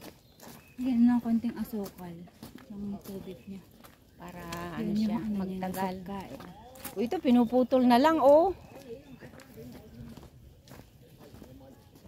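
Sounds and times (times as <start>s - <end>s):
faint voices talking: 0.8s - 12.0s.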